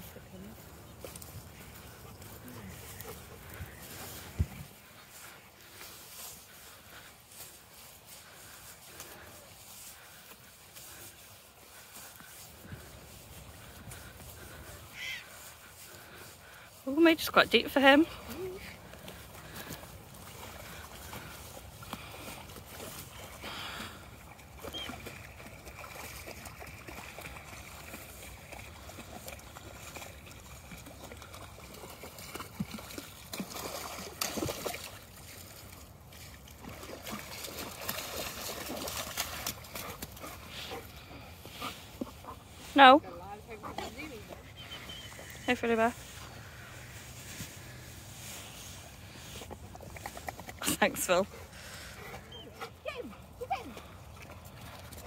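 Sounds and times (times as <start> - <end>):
dogs wading through water: 0.0 - 55.0
water splashing: 8.2 - 55.0.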